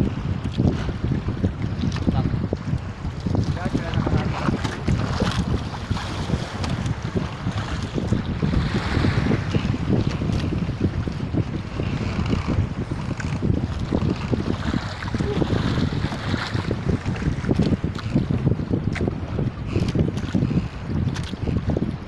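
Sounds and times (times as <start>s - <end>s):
water lapping at hull: 0.0s - 22.0s
wind buffeting microphone: 0.0s - 22.0s.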